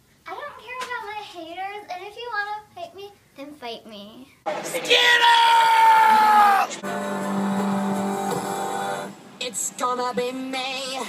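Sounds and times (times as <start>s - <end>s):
man screaming: 4.7s - 6.8s.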